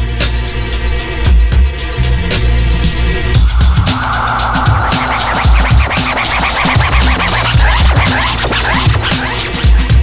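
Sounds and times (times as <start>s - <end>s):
turntable scratching: 3.4s - 9.6s
kick drum and hi-hats breakbeat: 3.4s - 10.0s.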